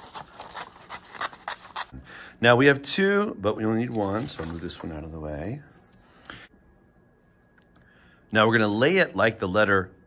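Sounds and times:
scissors snipping paper: 0.0s - 1.9s.

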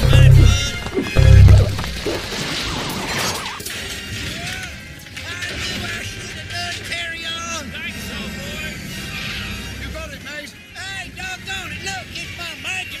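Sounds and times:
chopped repeated voice clips: 0.0s - 2.3s
remix music: 0.0s - 2.4s.

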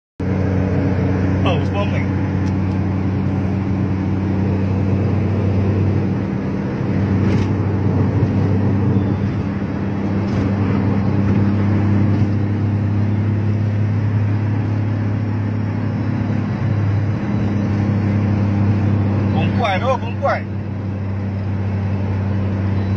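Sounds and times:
car engine hum: 0.2s - 22.9s
road and wind noise: 0.2s - 22.9s.

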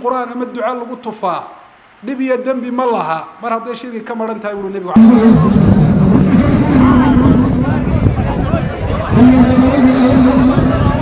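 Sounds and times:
wind rumble on microphone: 5.0s - 11.0s.

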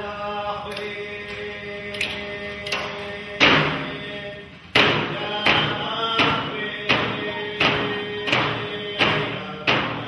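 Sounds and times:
group chanting: 0.0s - 10.0s.

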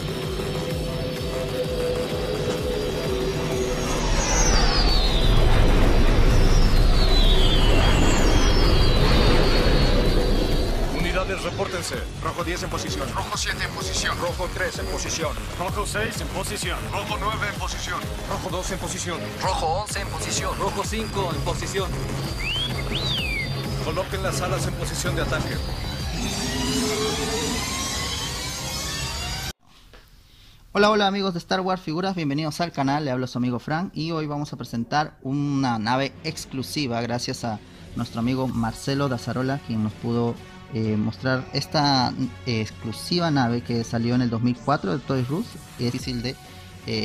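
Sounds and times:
spacecraft engines flying past: 0.0s - 13.2s, 24.0s - 29.5s.

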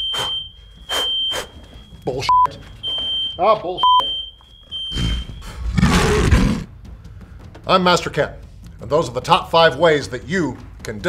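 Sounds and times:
smoke alarm tone: 0.0s - 5.6s
tiger roar sound effect: 4.9s - 6.7s.

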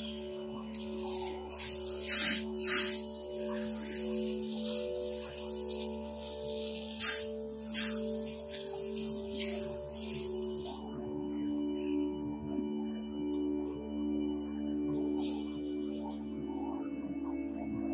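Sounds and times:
soft background music: 0.0s - 17.9s
hose nozzle spraying water: 0.7s - 10.9s, 15.2s - 15.5s.

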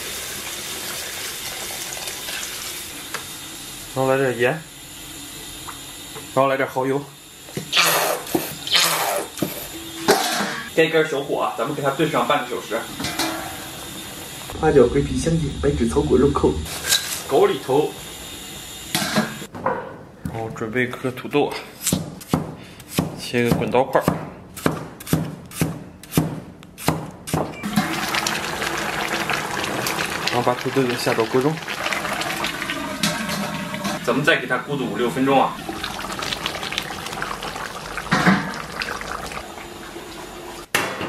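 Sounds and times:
sauce bubbling in a pot: 27.6s - 33.9s, 35.6s - 40.6s.

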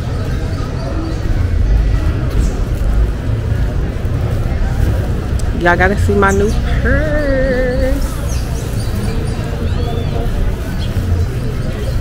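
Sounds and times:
loud low rumble: 0.8s - 8.3s.

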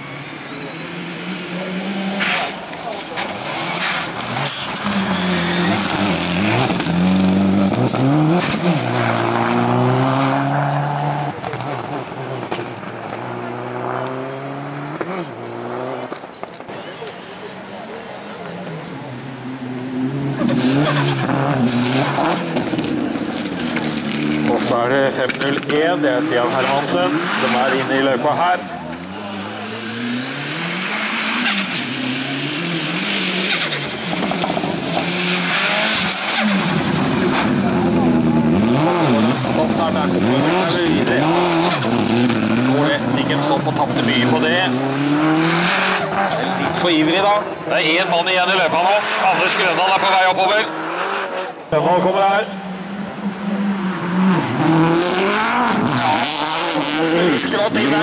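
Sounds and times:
second car engine revving hard: 0.0s - 16.2s, 18.4s - 58.0s
race car accelerating through gears: 0.1s - 16.2s, 18.4s - 58.0s.

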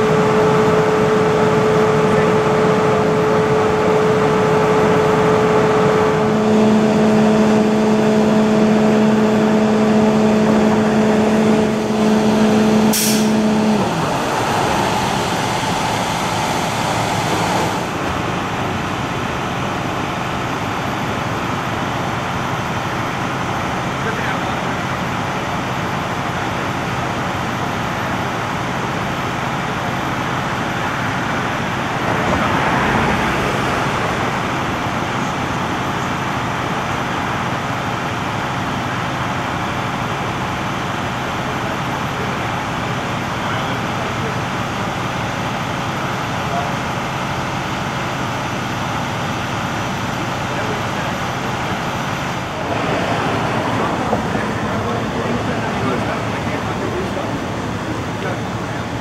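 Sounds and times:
vehicle engines idling: 0.0s - 59.0s.

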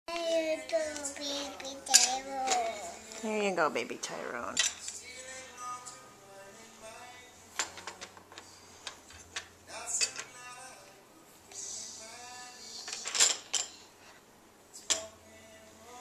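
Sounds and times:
toddler babbling: 0.1s - 3.0s
toy tea set clinking: 1.9s - 2.6s.

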